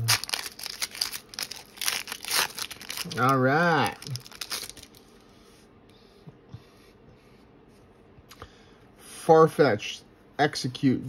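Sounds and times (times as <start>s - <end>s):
foil wrapper rustling: 0.0s - 5.1s.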